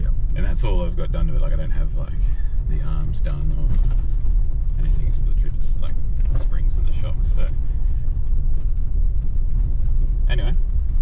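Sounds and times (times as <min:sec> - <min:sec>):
engine and tyres rumbling: 0:00.0 - 0:11.0
faint clicks and rattles: 0:00.0 - 0:11.0.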